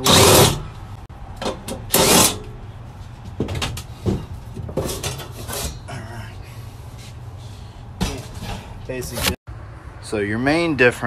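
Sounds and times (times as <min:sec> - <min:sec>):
metal scraping and knocking: 0:00.0 - 0:00.8, 0:01.4 - 0:05.9, 0:08.0 - 0:09.4.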